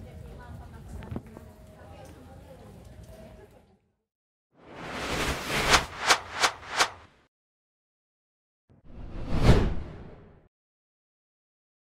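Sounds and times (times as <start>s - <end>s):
whoosh sound effect: 4.6s - 7.1s.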